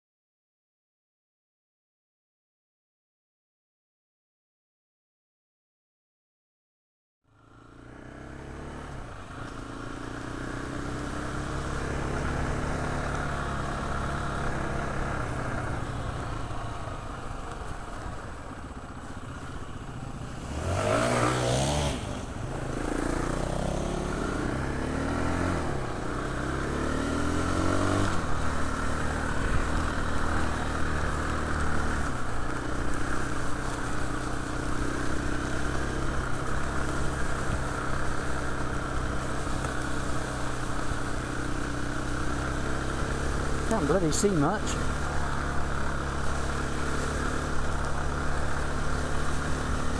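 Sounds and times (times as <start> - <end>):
dirt bike engine revving: 9.8 - 15.6, 20.4 - 34.0, 34.6 - 49.9.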